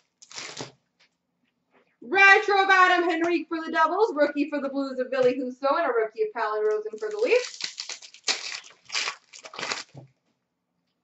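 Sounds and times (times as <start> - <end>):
card pack wrappers crinkling: 0.0 - 0.8, 6.8 - 10.1.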